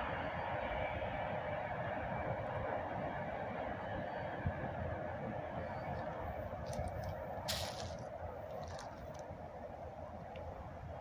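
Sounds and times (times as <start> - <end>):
distant freight train rumbling: 0.0 - 11.0.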